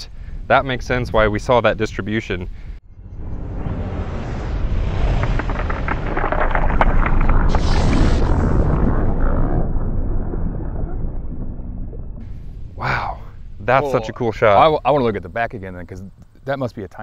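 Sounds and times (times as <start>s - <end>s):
slowed-down shotgun blast: 3.2s - 13.8s
sharp crackling clicks: 4.9s - 9.5s.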